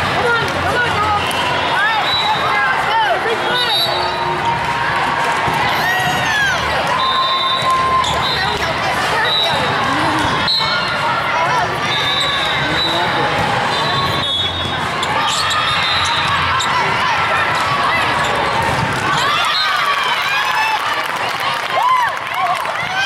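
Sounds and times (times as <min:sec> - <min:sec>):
players and spectators talking: 0:00.0 - 0:23.0
volleyballs struck and bouncing: 0:17.5 - 0:19.3.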